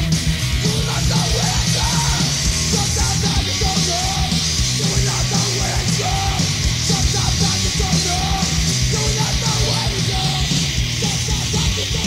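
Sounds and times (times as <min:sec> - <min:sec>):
bass: 0:00.0 - 0:12.0
distorted electric guitar: 0:00.0 - 0:12.0
drums playing fast: 0:00.0 - 0:12.0.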